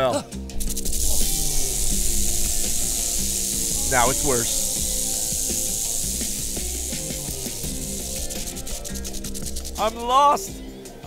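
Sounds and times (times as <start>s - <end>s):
background music: 0.0s - 11.0s
rattlesnake rattle buzzing: 0.4s - 10.1s.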